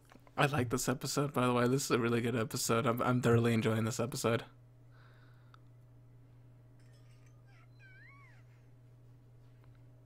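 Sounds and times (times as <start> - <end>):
steady low hum: 0.0 - 10.0
faint wavering high tone: 6.8 - 8.6.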